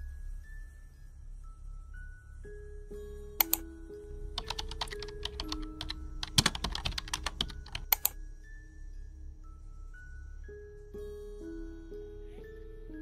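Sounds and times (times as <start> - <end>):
soft background music: 0.0 - 13.0
keyboard typing: 3.4 - 3.7, 4.4 - 8.2.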